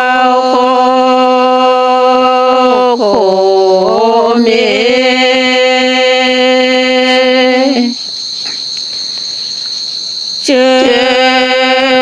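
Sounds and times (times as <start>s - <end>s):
person chanting a poem: 0.0s - 8.0s, 10.4s - 12.0s
cricket trill: 0.0s - 12.0s.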